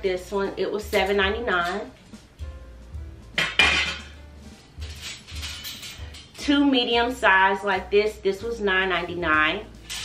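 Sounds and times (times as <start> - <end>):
wire baskets clanking: 3.4 - 6.5, 9.8 - 10.0.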